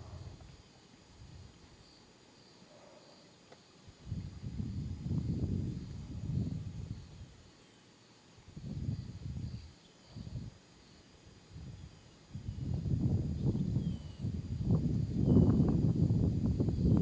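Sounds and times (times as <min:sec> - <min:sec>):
faint insect chirping: 0:00.0 - 0:17.0.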